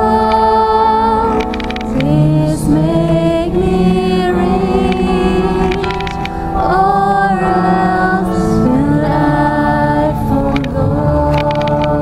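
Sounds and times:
instrumental accompaniment: 0.0s - 12.0s
people singing worship song: 0.0s - 12.0s.

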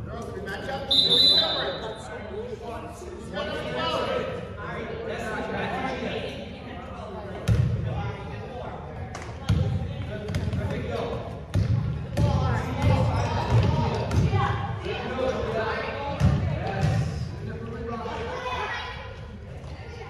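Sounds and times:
voices of players and onlookers: 0.0s - 20.0s
basketball bouncing on gym floor: 11.5s - 14.4s.

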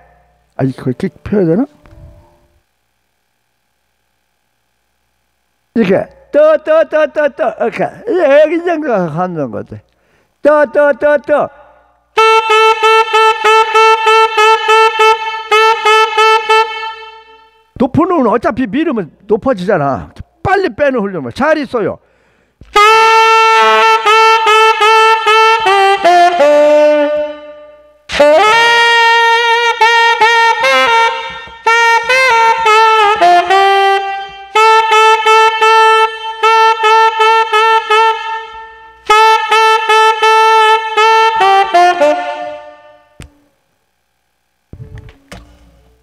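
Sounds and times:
tenor saxophone playing: 12.1s - 17.8s, 22.6s - 43.4s.

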